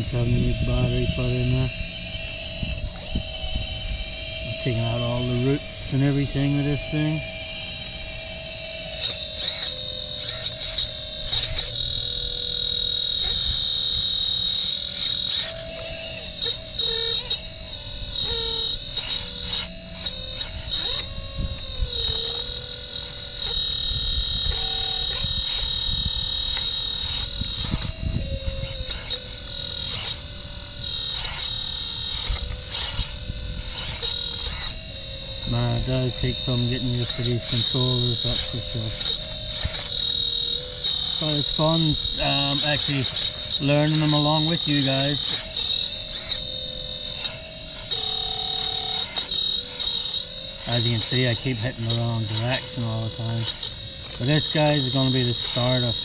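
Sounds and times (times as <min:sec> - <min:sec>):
higher motor whine: 0:00.0 - 0:56.0
toy excavator hydraulic whine: 0:00.0 - 0:56.0.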